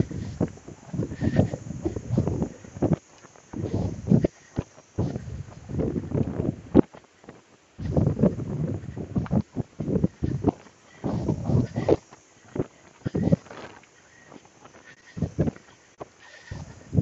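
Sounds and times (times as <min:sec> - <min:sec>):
wind buffeting microphone: 0:00.0 - 0:07.0, 0:07.8 - 0:13.6, 0:15.0 - 0:15.7, 0:16.4 - 0:17.0.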